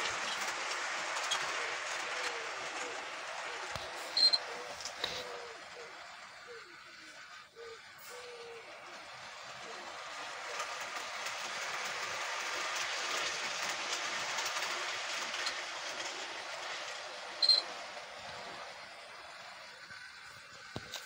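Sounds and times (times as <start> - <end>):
model train wheels rattling: 0.0 - 21.0
sharp high squeak: 17.4 - 17.7.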